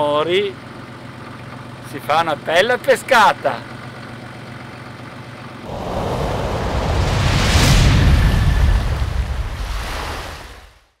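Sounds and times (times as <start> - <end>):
deep rushing rumble with hiss: 5.7 - 10.8.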